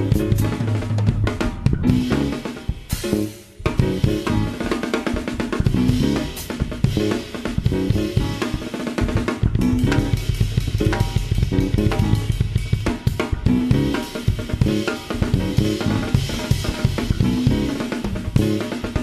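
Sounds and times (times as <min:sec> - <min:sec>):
jazz drum kit: 0:00.0 - 0:19.0
sustained low notes: 0:09.4 - 0:12.6.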